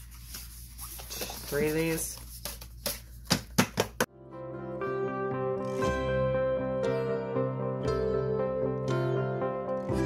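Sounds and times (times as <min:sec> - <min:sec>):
paper sheets being flipped: 0:00.0 - 0:03.3.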